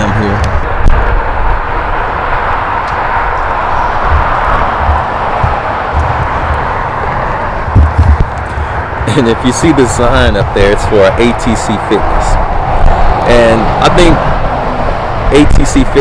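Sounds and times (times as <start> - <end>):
highway traffic rushing by: 0.0 - 16.0
wind rumble on microphone: 0.0 - 16.0.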